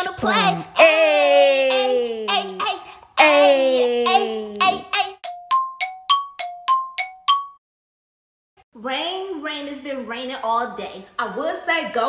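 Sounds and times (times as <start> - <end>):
bell-like chime dings: 5.2 - 7.6.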